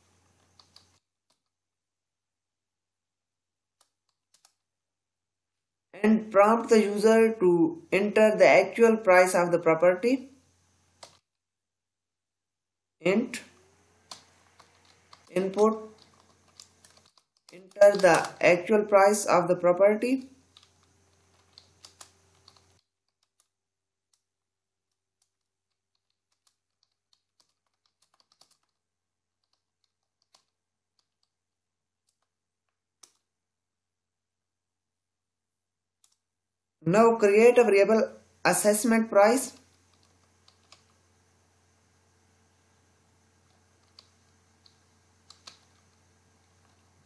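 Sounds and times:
computer keyboard keystrokes: 0.5s - 1.5s, 3.8s - 4.7s, 11.0s - 11.2s, 14.1s - 18.4s, 20.5s - 23.5s, 24.9s - 28.8s, 29.4s - 31.4s, 32.0s - 32.4s, 33.0s - 33.3s, 36.0s - 36.2s, 39.6s - 41.0s, 43.5s - 45.9s
keyboard keystroke clicks: 26.0s - 28.8s, 43.5s - 45.8s.

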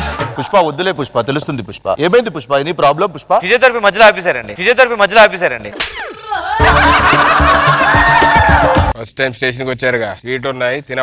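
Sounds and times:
comic music with steady beat: 5.8s - 9.0s
loud laughter: 6.4s - 8.6s.

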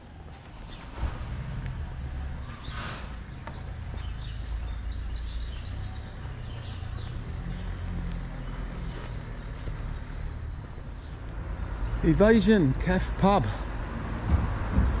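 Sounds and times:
small birds chirping: 0.4s - 13.8s
low rumble on microphone: 14.0s - 15.0s.

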